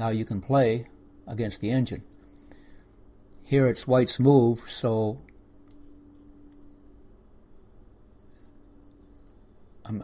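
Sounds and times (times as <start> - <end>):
faint background hiss: 0.0 - 10.0
faint low hum: 0.0 - 10.0.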